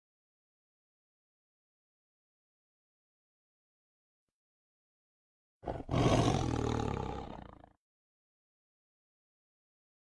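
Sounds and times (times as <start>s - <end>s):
tiger roaring: 5.6s - 7.8s.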